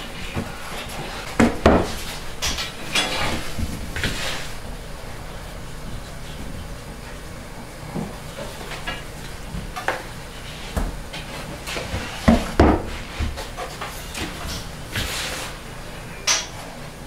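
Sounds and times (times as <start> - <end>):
hands kneading dough: 0.0 - 15.8.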